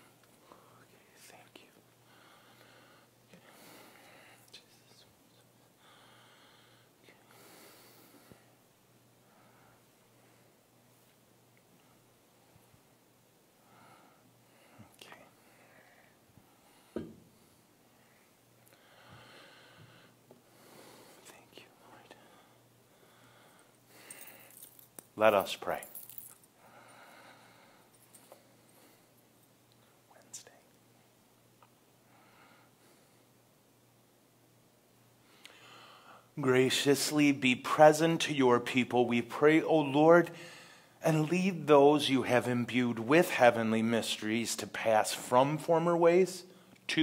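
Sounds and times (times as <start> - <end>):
faint whispering: 0.0 - 2.0, 4.2 - 5.8, 14.7 - 16.2, 21.1 - 22.6, 29.9 - 30.8.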